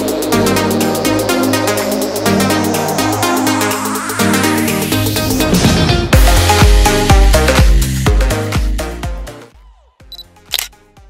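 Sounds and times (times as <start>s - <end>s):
dance music: 0.0s - 9.5s
camera shutter click: 10.2s - 10.8s.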